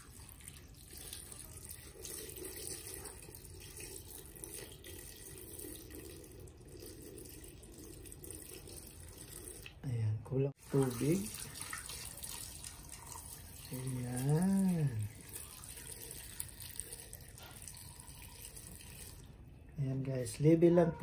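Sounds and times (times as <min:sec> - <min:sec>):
water pouring into metal pot: 0:00.0 - 0:09.8, 0:10.6 - 0:19.3.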